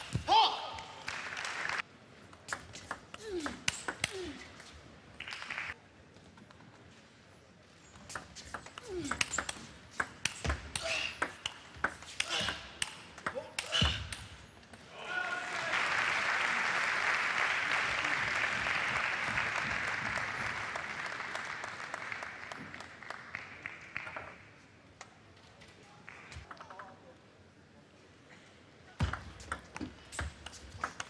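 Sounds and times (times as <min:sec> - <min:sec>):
crowd applauding: 0:00.8 - 0:01.8, 0:05.2 - 0:05.8, 0:15.3 - 0:24.3.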